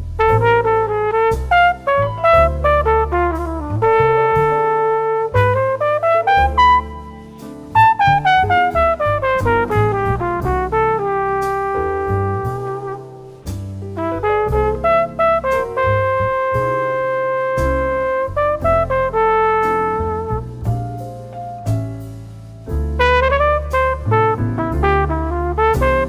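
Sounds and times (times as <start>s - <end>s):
bass: 0.0s - 26.0s
jazz trumpet solo: 0.0s - 26.0s.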